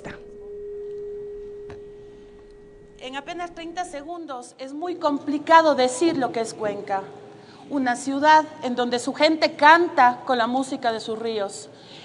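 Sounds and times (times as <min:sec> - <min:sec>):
steady mid-pitched tone: 0:00.0 - 0:04.4.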